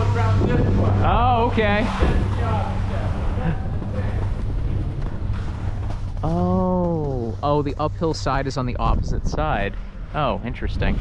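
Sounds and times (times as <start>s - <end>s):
wind noise: 0.0s - 5.8s, 8.2s - 11.0s
low hum of chairlift machinery: 0.0s - 11.0s.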